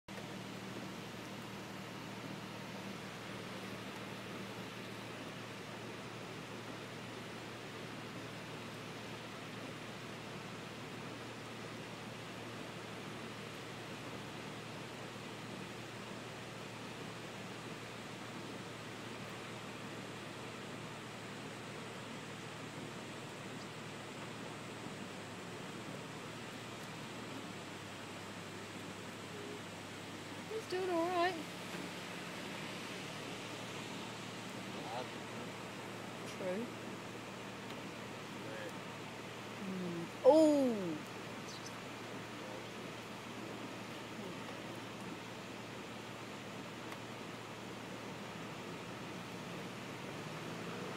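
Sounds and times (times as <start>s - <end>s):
floodwater flowing across road: 0.0s - 50.9s
heavy rain: 0.0s - 50.9s
faint low hum: 0.1s - 50.9s.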